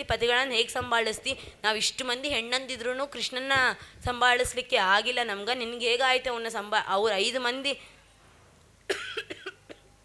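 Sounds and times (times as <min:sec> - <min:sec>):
person coughing: 0:08.9 - 0:09.9.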